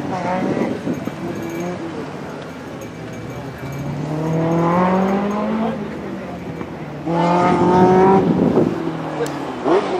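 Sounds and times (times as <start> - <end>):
car engine revving: 3.1 - 9.9.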